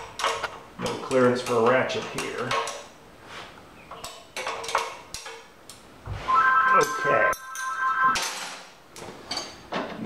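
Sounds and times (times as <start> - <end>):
wrenches clinking on metal: 0.0 - 2.9, 4.0 - 5.5.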